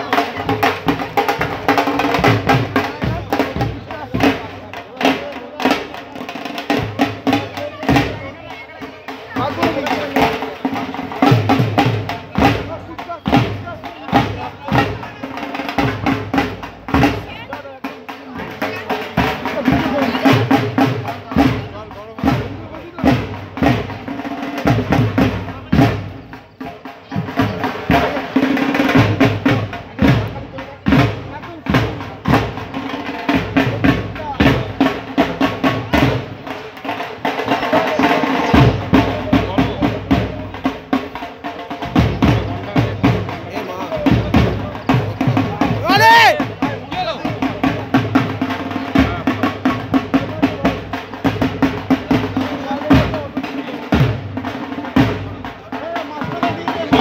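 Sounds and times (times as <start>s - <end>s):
drums beating: 0.0s - 57.0s
people talking and calling: 0.0s - 57.0s.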